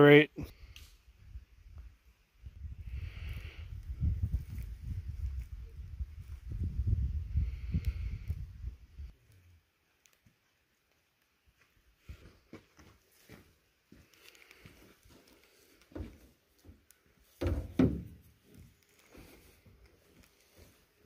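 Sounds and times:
rumbling on camera microphone: 2.6 - 9.1.

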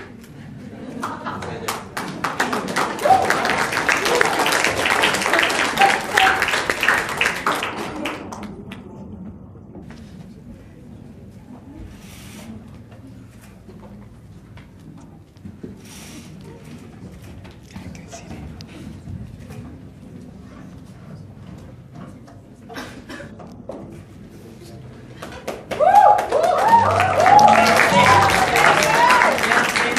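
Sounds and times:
audience applause: 1.0 - 8.8, 25.4 - 29.9.

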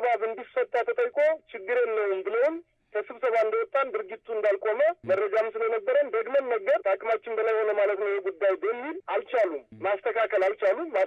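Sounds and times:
person talking: 0.0 - 11.0.

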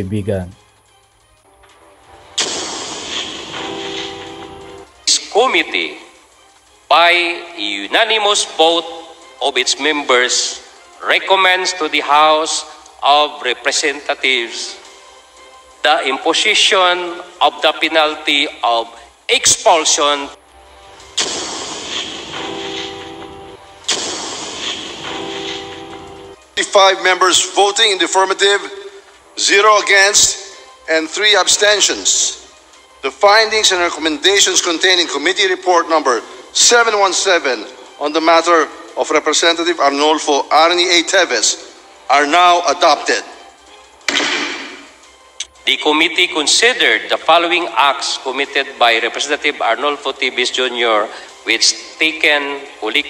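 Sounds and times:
crash-like hit: 2.4 - 4.3, 21.2 - 23.1, 23.9 - 25.7, 44.1 - 44.8.

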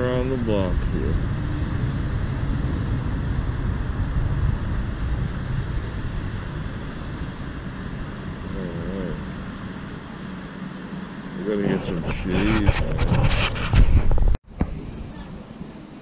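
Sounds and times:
cars driving past: 0.0 - 13.0
wind and road noise: 0.0 - 16.0.

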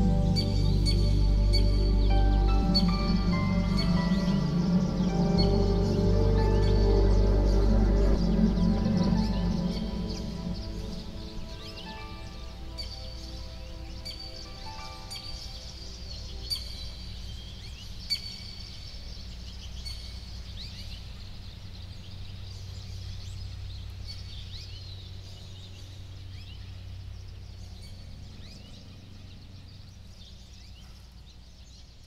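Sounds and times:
steady low rumble: 0.0 - 31.6
birds chirping: 0.0 - 32.0
soft sustained musical tones: 0.0 - 32.0.

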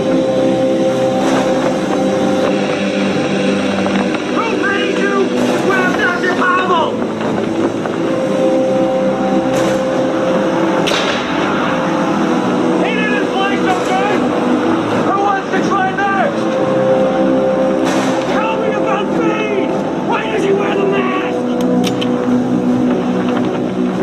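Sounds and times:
droning hum with rushing noise: 0.0 - 24.0
sharp cracks: 1.2 - 12.8.

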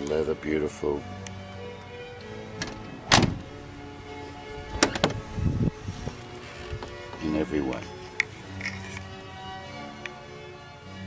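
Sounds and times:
background music: 0.0 - 11.0
car door handle clicking: 2.6 - 3.5, 4.7 - 5.2
car door opening with knocks: 2.6 - 3.6, 4.7 - 5.2
loud thump: 2.6 - 3.8, 4.8 - 5.4.

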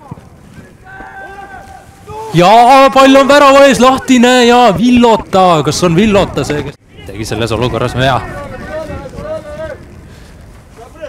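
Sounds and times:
players shouting: 0.0 - 10.0
outdoor background noise: 0.0 - 11.0.

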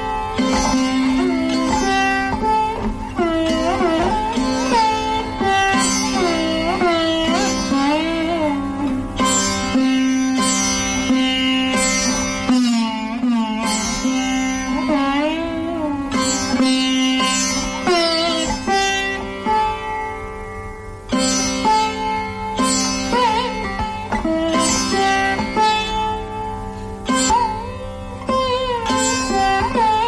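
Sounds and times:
sitar melody: 0.0 - 30.0.

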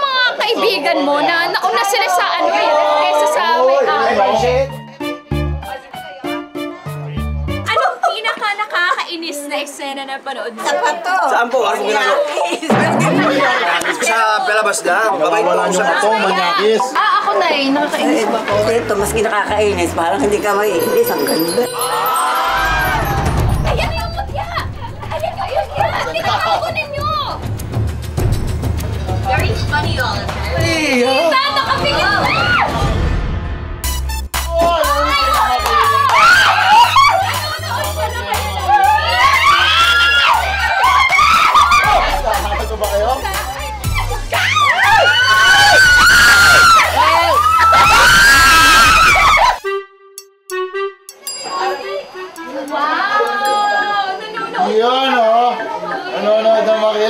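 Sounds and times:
excited overlapping chatter: 0.0 - 4.5, 5.6 - 27.6, 29.0 - 32.8, 34.8 - 49.6, 51.3 - 57.0
music with steady low beat: 22.8 - 31.0, 33.8 - 47.8
people crying out in wails: 34.5 - 37.4, 38.6 - 42.2, 43.9 - 49.6.

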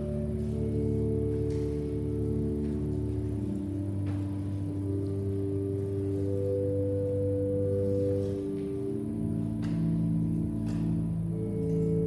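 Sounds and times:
sustained organ chords: 0.0 - 12.0.

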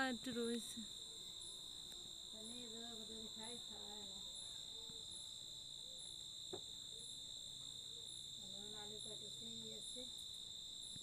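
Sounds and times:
crickets trilling: 0.0 - 11.0
pulsing insect call: 0.0 - 11.0.

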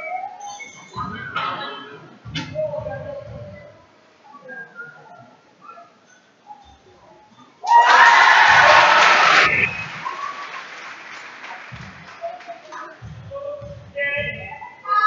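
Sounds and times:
crowd noise: 3.8 - 15.0
spectators cheering: 7.6 - 11.9.

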